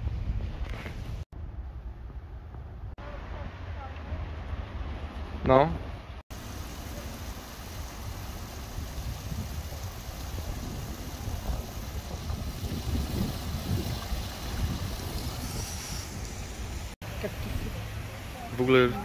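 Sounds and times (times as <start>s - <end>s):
wind buffeting microphone: 6.5s - 17.8s.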